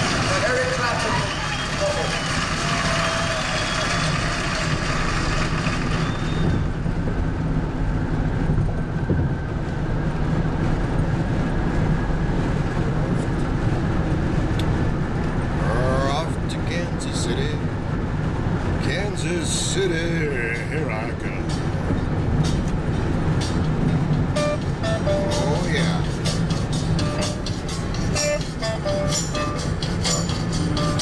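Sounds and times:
car cabin road and engine noise: 0.0 - 31.0.

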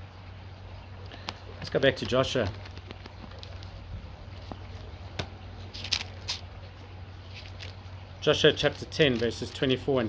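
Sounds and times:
steady low hum: 0.0 - 10.0
paper pages rustling: 1.9 - 4.9, 5.6 - 7.8.

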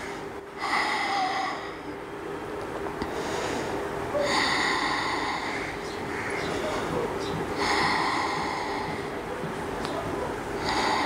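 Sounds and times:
woman breathing deeply: 0.0 - 2.0, 3.0 - 5.8, 6.4 - 9.2, 10.6 - 11.0.

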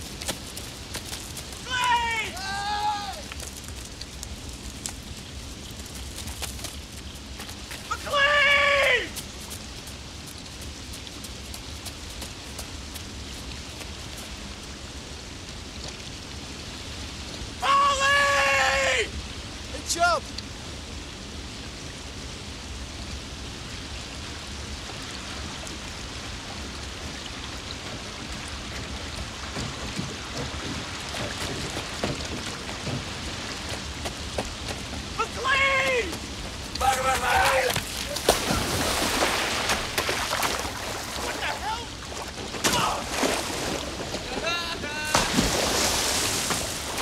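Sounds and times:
river rapids rushing: 0.0 - 3.4, 25.8 - 47.0
short high-pitched yell: 1.7 - 3.2, 17.6 - 19.1, 35.2 - 36.1
people splashing through water: 36.8 - 47.0.

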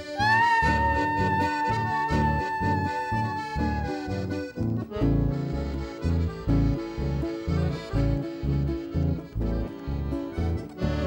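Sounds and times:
button accordion: 0.0 - 11.0
low bass beat: 3.7 - 11.0.

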